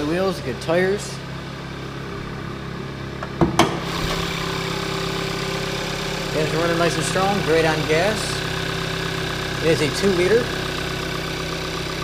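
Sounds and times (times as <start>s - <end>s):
car engine idling: 0.0s - 12.0s
car hood clunks: 3.2s - 4.2s.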